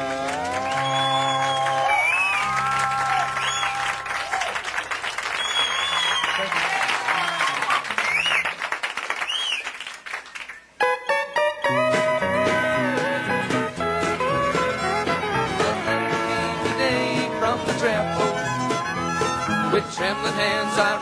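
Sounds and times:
audience applauding: 0:00.0 - 0:10.7
high whistles: 0:00.6 - 0:04.0, 0:05.3 - 0:06.5, 0:08.0 - 0:08.5, 0:09.2 - 0:09.8.

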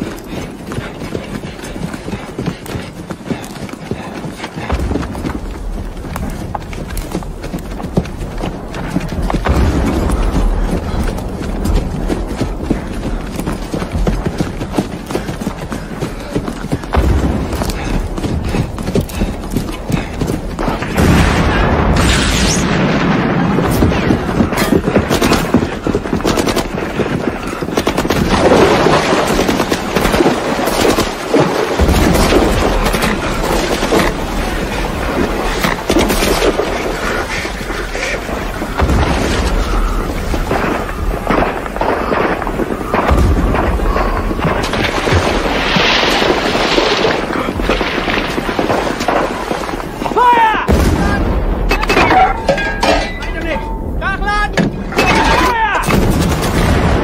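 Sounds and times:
heavy explosions: 0:04.7 - 0:15.0, 0:16.8 - 0:57.0
rifle and machine-gun fire: 0:55.8 - 0:57.0.

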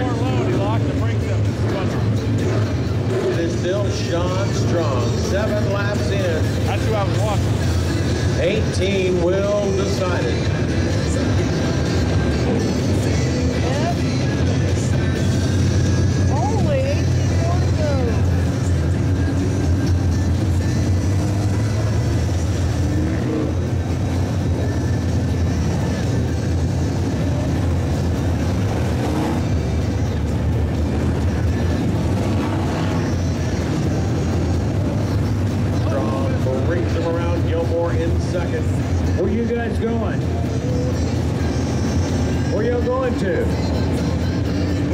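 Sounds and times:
cars passing by: 0:00.0 - 0:44.9
race car engines roaring: 0:00.0 - 0:44.9.

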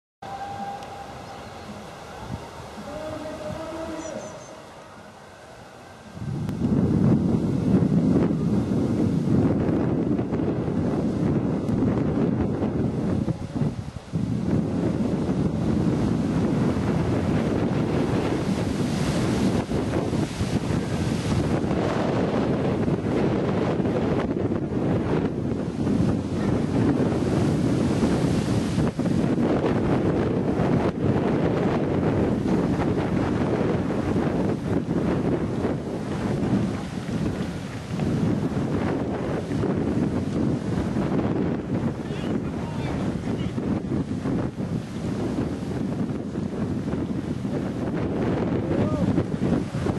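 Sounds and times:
wind buffeting microphone: 0:00.2 - 0:49.9.

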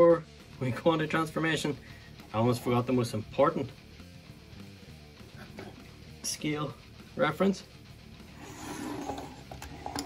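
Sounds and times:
plastic toy scraping on wood: 0:08.4 - 0:10.0.

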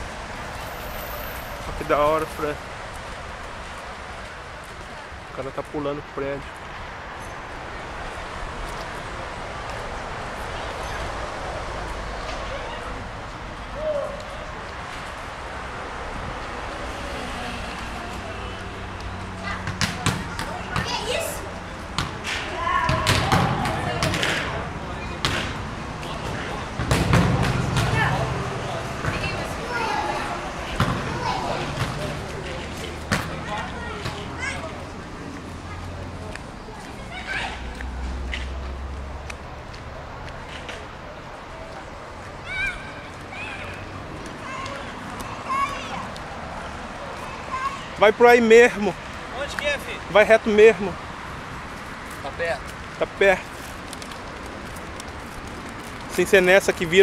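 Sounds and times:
steady outdoor hiss: 0:00.0 - 0:57.0
young people shouting: 0:22.4 - 0:24.1, 0:27.6 - 0:32.2.

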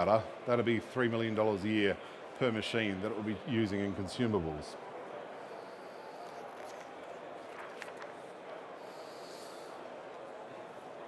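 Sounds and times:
soft breath: 0:05.3 - 0:06.8, 0:08.5 - 0:10.2.

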